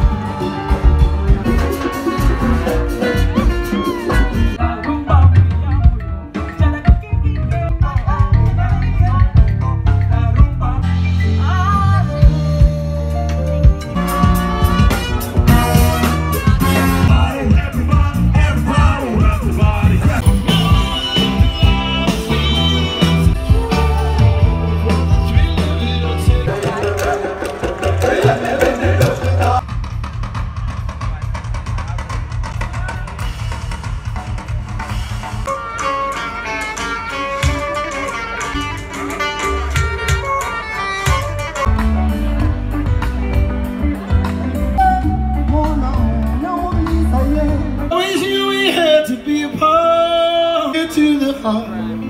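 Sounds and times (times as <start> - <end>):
guitar accompaniment: 0.0 - 29.6, 32.5 - 52.0
drum kit beat: 0.0 - 48.9
live band music: 0.0 - 52.0.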